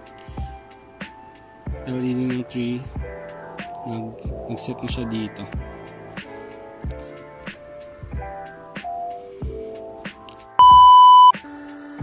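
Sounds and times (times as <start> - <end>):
soft background music: 0.0 - 12.0
high electronic beep: 10.6 - 11.4.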